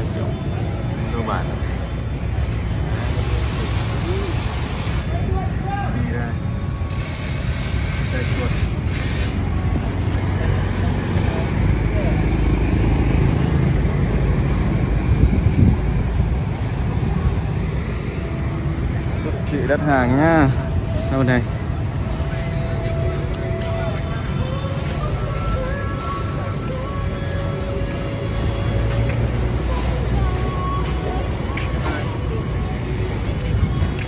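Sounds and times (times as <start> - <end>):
faint voices of people: 0.0 - 14.1, 18.2 - 34.0
low street rumble: 0.0 - 34.0.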